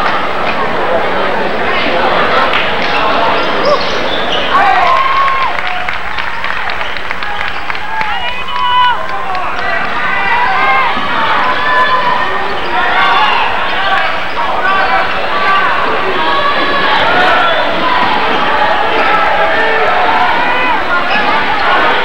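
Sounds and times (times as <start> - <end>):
crowd chatter and shouts: 0.0 - 22.0
players running: 2.3 - 22.0.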